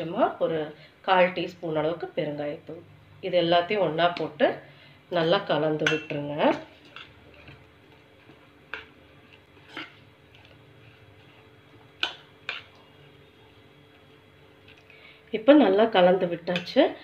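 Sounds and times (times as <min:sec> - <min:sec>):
hand mixing batter: 0:05.7 - 0:15.0.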